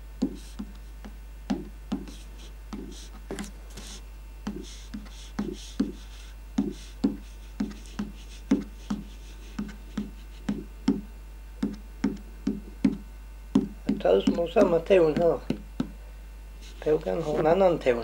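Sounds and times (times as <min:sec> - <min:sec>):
stick tapping a card: 0:00.2 - 0:16.0.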